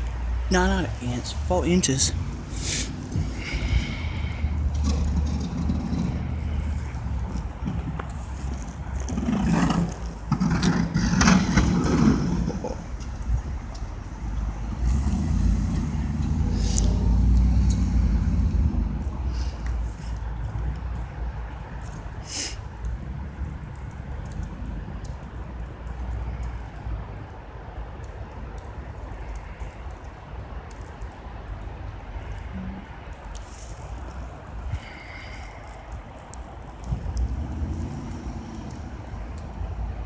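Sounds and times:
truck rumbling pushing snow: 0:00.0 - 0:21.1, 0:36.2 - 0:40.0.

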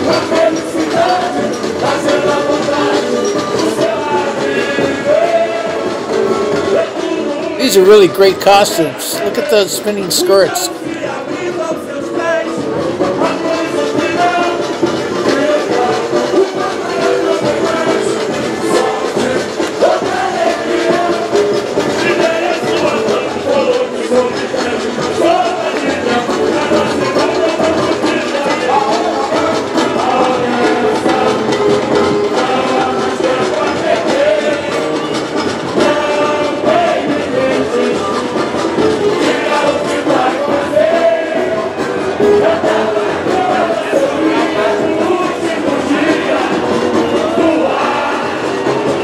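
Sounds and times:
crowd voices: 0:00.0 - 0:49.0
samba drum beat: 0:00.0 - 0:49.0
sung samba melody: 0:00.0 - 0:49.0.

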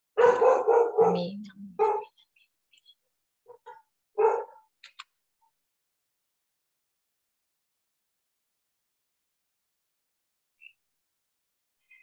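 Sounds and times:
dog barking: 0:00.2 - 0:02.2, 0:03.5 - 0:04.7.

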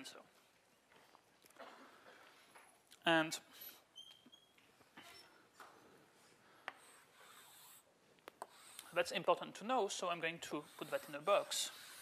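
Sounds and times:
chalk scratching on blackboard: 0:06.8 - 0:09.1, 0:10.5 - 0:12.0.

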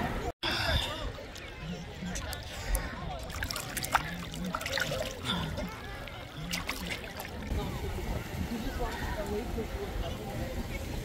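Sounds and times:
small waves lapping: 0:01.3 - 0:09.6
short sharp splashes: 0:03.2 - 0:05.7.

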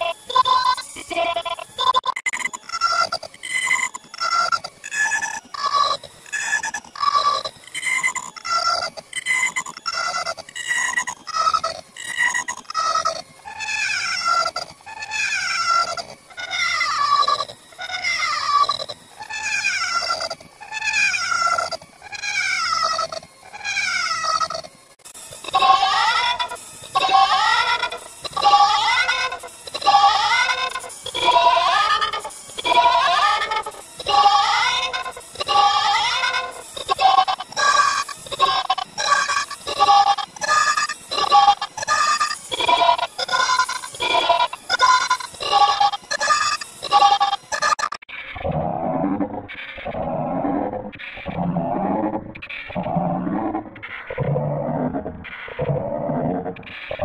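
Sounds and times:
distorted looped cartoon voice: 0:00.0 - 0:57.0.

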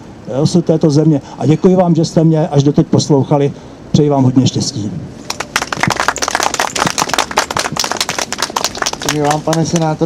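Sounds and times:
audience clapping: 0:05.3 - 0:10.0.

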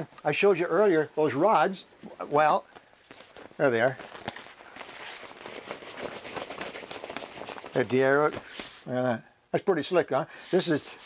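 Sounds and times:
cloth flag rustling and flapping: 0:02.1 - 0:08.8.

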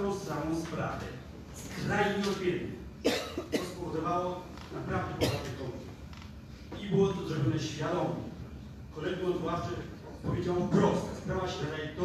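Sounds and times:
person coughing: 0:03.0 - 0:03.9, 0:05.1 - 0:05.7.

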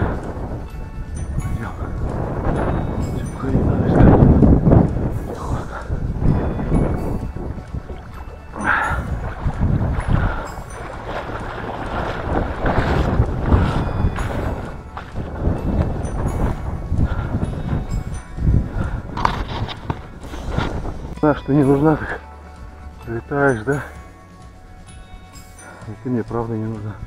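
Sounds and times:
water sloshing and splashing: 0:00.0 - 0:27.0
wind buffeting microphone: 0:00.0 - 0:27.0.

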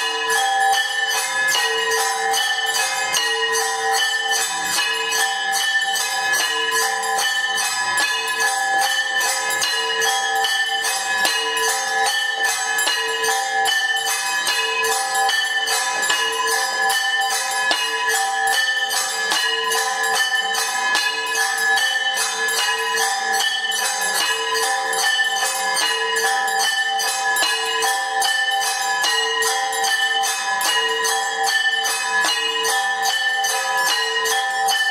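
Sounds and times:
temple bells rung rapidly: 0:00.0 - 0:34.9.

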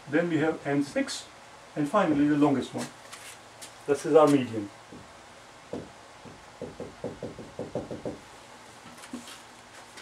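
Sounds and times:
marker tapping on whiteboard: 0:05.7 - 0:08.2.

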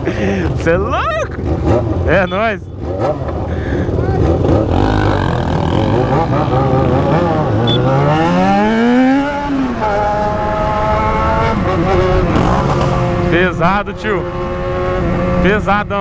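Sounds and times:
motorcycle engine revving: 0:00.0 - 0:16.0.

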